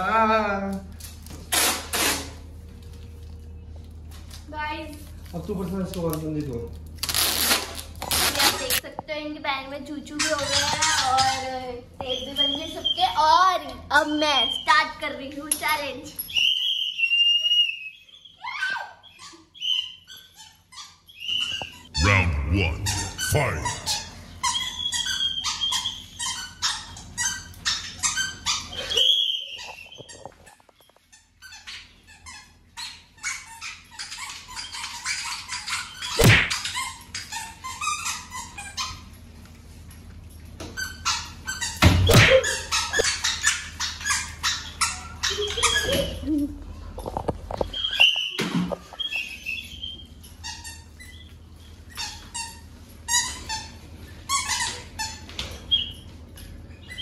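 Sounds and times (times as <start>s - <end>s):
sharp clicking and squeaking: 10.1s - 13.1s, 23.0s - 39.2s, 40.6s - 46.4s, 47.0s - 57.0s.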